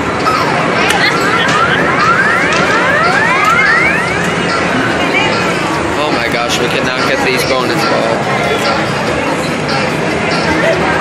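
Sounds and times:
arcade background din: 0.0 - 11.0
rising whooping electronic sweeps: 1.0 - 4.8.

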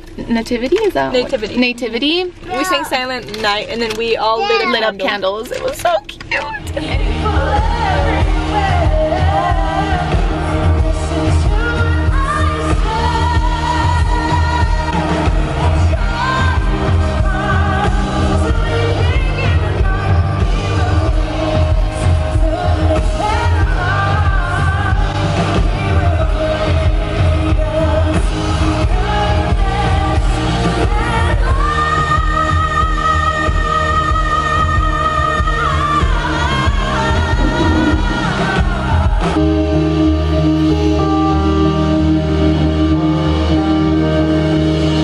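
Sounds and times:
woman singing into microphone: 6.6 - 39.3
live band with heavy bass: 6.7 - 31.6, 35.6 - 45.0.

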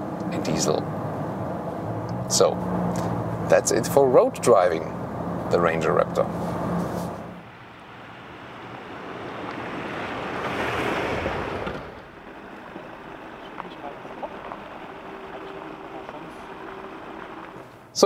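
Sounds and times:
diesel engine humming: 0.0 - 18.0
rushing wind-like noise: 6.4 - 15.3
tyres crunching on dirt: 9.5 - 17.9.

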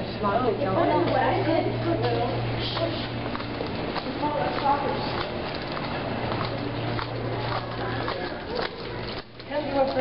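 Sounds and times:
background chatter of voices: 0.0 - 10.0
steady low hum: 0.0 - 10.0.

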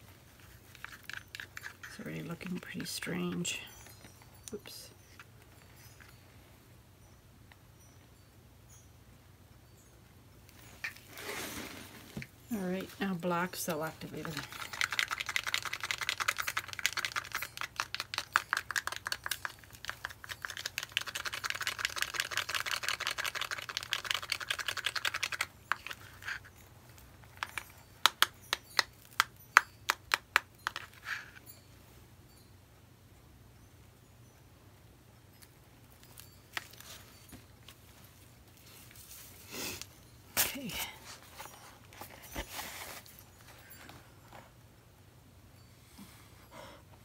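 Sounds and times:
bottle rattling when shaken: 0.4 - 5.3, 12.5 - 31.1.

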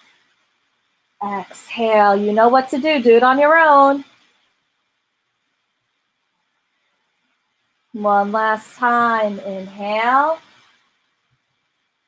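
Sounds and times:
faint room hiss: 0.0 - 12.0
woman speaking: 1.2 - 4.1, 8.0 - 10.6.

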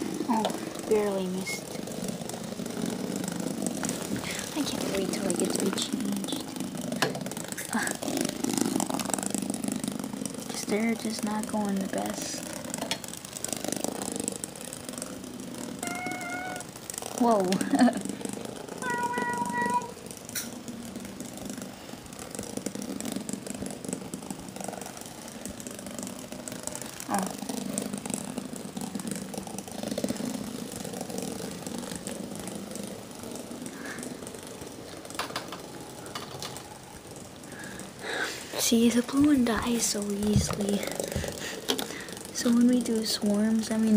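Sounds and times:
toys buzzing and rattling on floor: 0.0 - 43.9.

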